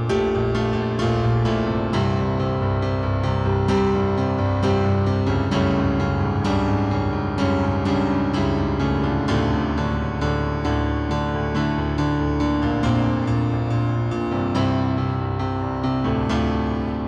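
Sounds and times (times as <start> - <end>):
slow piano chords: 0.0 - 17.0.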